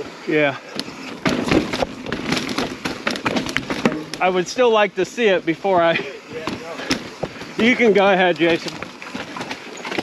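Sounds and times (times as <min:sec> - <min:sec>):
bike rattling over rocks: 0:00.0 - 0:10.0.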